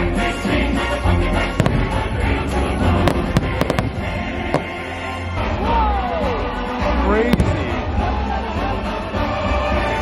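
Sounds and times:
spooky music over loudspeakers: 0.0 - 10.0
firework bang: 1.6 - 5.0.

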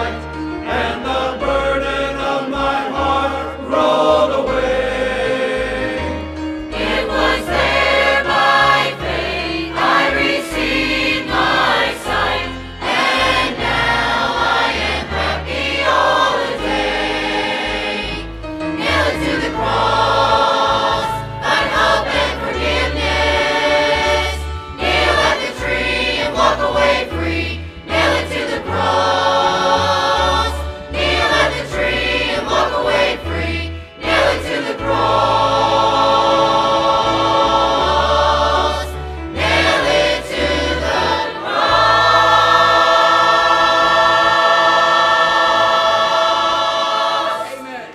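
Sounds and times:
choir singing gospel song: 0.0 - 47.9
instrumental accompaniment: 0.0 - 47.9.

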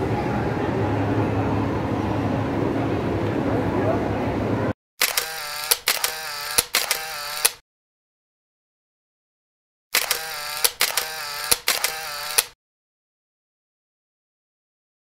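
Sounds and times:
sharp clicks: 5.0 - 7.6, 10.0 - 12.6.

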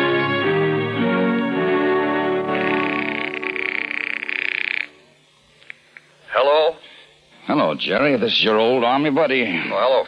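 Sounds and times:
brass music: 0.0 - 3.7.

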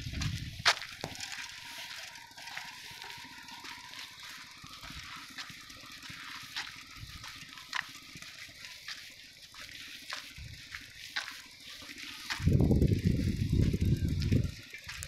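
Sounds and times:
footsteps crunching on dirt: 0.0 - 15.0.

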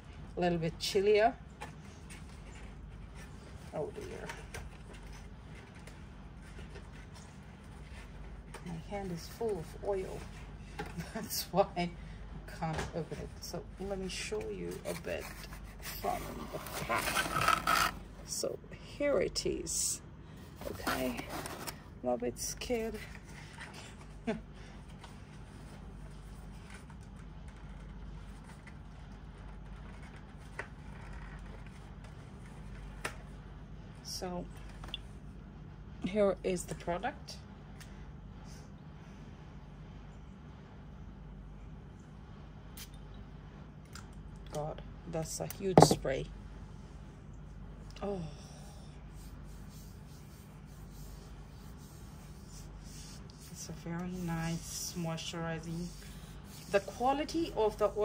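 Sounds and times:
low steady hum: 0.0 - 58.0.

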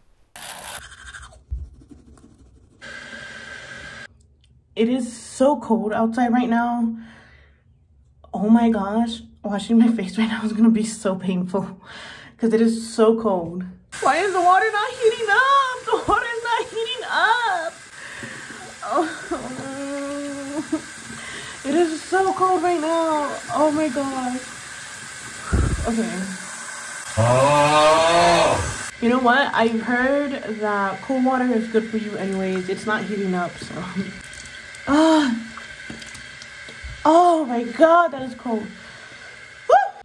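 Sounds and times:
toothbrush scrubbing teeth: 0.4 - 2.8.

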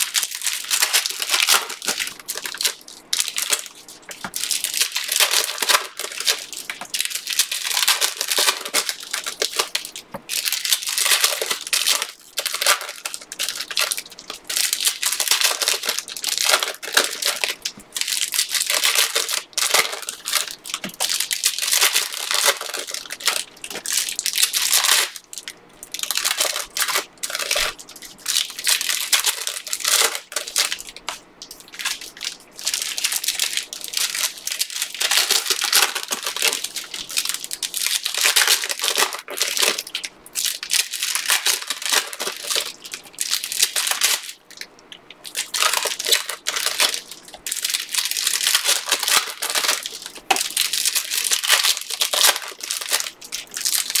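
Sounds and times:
foil wrappers crinkling: 0.0 - 54.0.

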